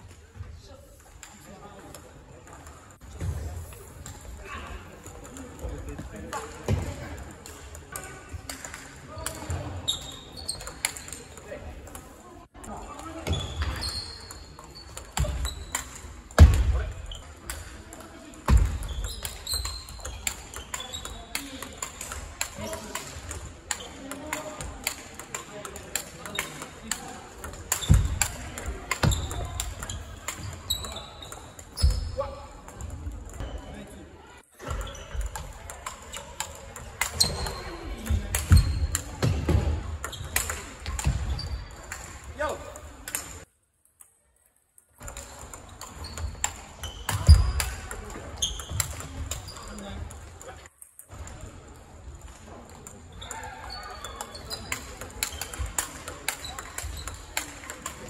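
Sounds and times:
chatter in sports hall: 0:00.0 - 0:58.0.

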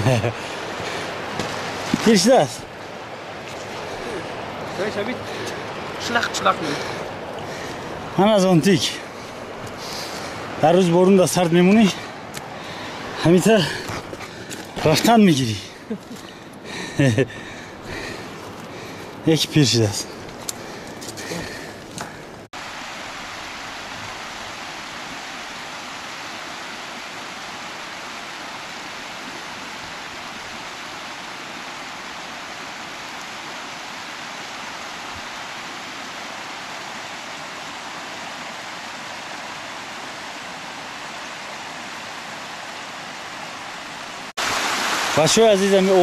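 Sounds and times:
mountain stream rushing: 0:00.0 - 0:46.0.

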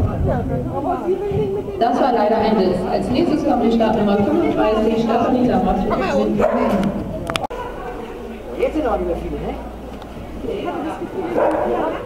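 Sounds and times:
dog barking: 0:06.4 - 0:07.0, 0:11.3 - 0:12.0.

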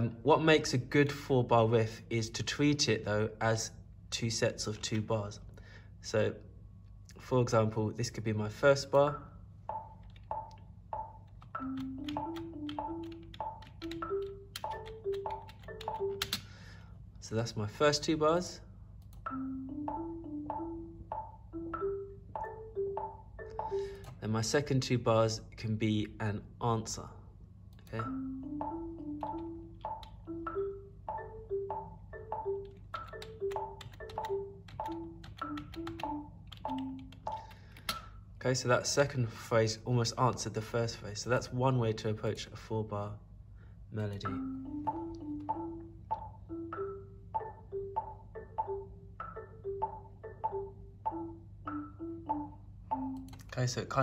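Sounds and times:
metronome ticking: 0:08.9 - 0:16.6, 0:19.0 - 0:24.6, 0:27.8 - 0:38.2, 0:44.1 - 0:53.8
marimba riff: 0:09.0 - 0:16.9, 0:19.2 - 0:24.3, 0:27.9 - 0:37.7, 0:44.2 - 0:53.5.

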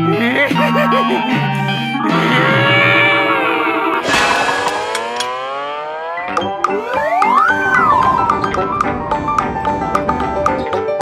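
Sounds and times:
cartoon hit: 0:04.0 - 0:06.0.

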